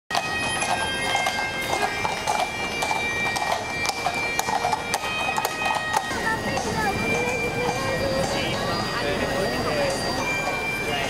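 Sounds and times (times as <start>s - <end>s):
held high tones: 0.1s - 11.0s
horse hooves clip-clopping on asphalt: 0.1s - 11.0s
crowd voices: 0.2s - 11.0s.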